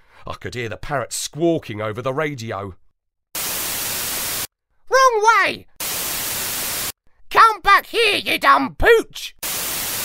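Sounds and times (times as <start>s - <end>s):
radio static hiss: 3.4s - 4.5s, 5.8s - 6.9s, 9.4s - 10.0s.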